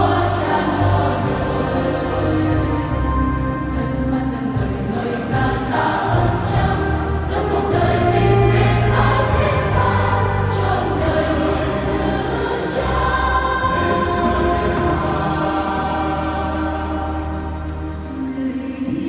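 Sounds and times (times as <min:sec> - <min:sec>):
choir singing a hymn: 0:00.0 - 0:19.0.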